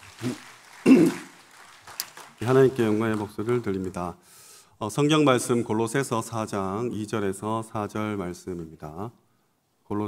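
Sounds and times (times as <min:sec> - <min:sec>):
man clearing his throat: 0:00.8 - 0:01.3.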